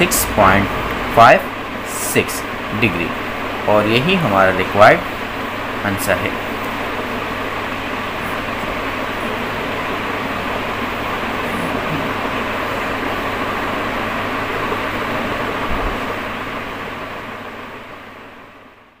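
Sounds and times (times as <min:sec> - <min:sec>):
faint low hum: 0:00.0 - 0:17.6
steady rushing noise: 0:00.0 - 0:18.8.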